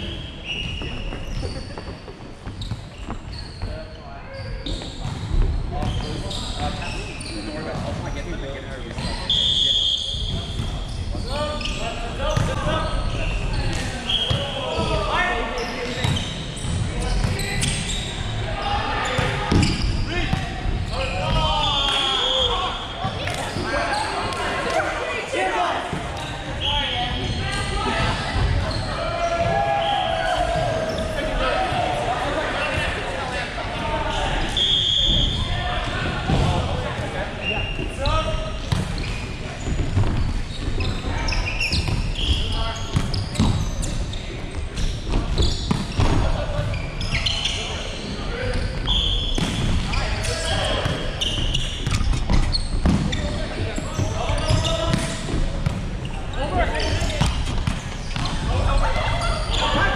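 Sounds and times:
players calling out: 10.6s - 39.2s
volleyball bouncing on hardwood court: 12.3s - 12.7s, 16.0s - 17.4s, 19.2s - 21.4s, 38.6s - 40.9s, 41.7s - 43.7s, 45.0s - 46.3s, 49.3s - 50.0s, 50.8s - 56.0s.

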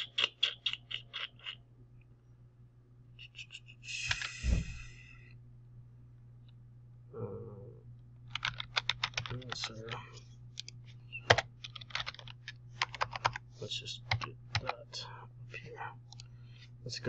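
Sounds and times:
typing on a computer keyboard: 8.3s - 9.8s, 10.6s - 13.4s, 14.1s - 14.8s.

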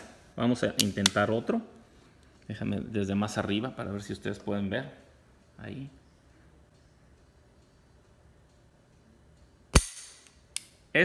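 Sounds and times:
pistol hammer clicks: 9.7s - 10.8s.

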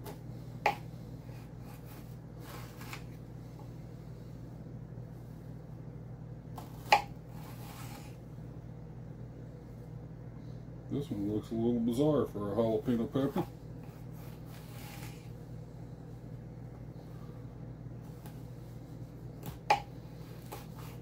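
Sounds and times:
faint scraping and rustling: 1.2s - 3.8s, 13.2s - 15.4s.

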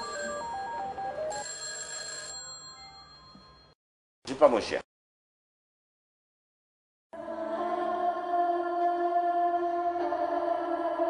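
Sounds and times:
electronic ringtone melody: 0.0s - 3.8s.

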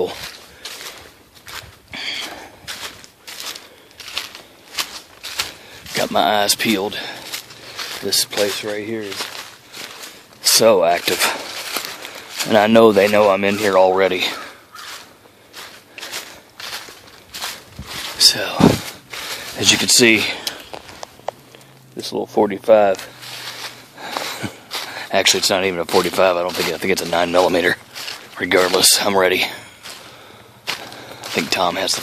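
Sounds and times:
footsteps crunching through dry leaves: 0.0s - 32.0s.

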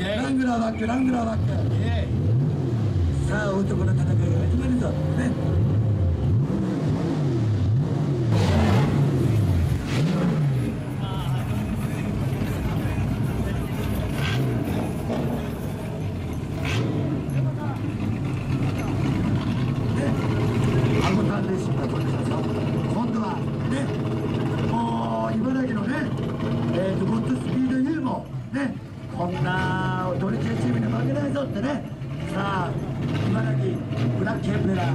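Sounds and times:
car engine revving: 0.0s - 34.9s
crowd chatter: 8.4s - 34.9s.

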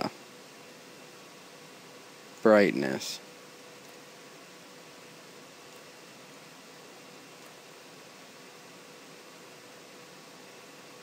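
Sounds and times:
faint background hiss: 0.0s - 11.0s
faint steady hum: 0.0s - 11.0s.

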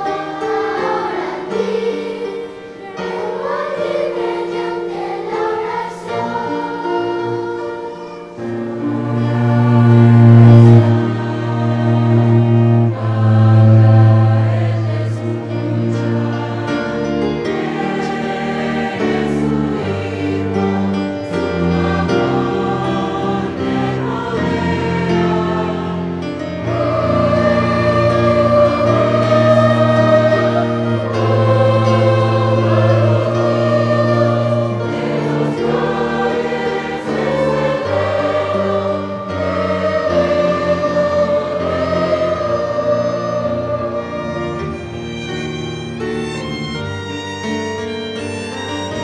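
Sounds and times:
youth choir singing: 0.0s - 49.0s.

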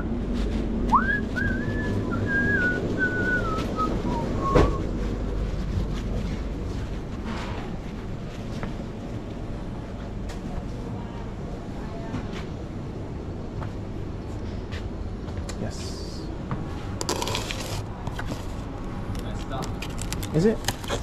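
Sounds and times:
low room hum: 0.0s - 21.0s
rustling scrape: 4.8s - 8.6s, 17.0s - 21.0s.

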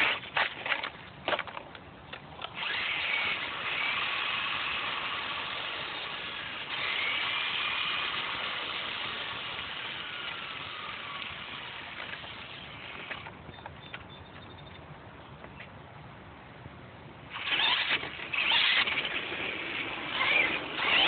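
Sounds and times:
electric motor whining: 2.5s - 13.3s, 17.3s - 21.0s.

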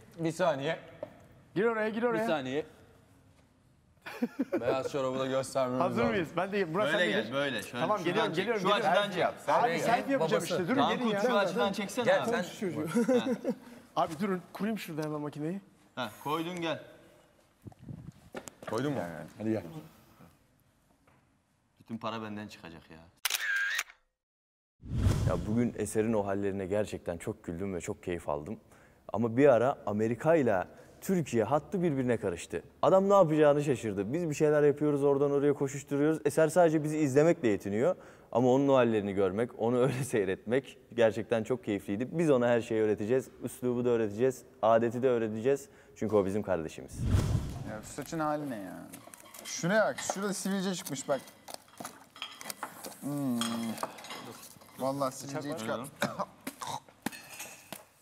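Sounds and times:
camera shutter click: 23.2s - 24.0s.

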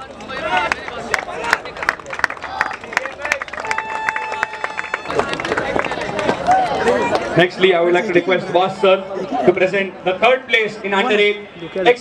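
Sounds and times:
audience clapping: 0.1s - 7.3s
voices chattering: 5.0s - 12.0s.

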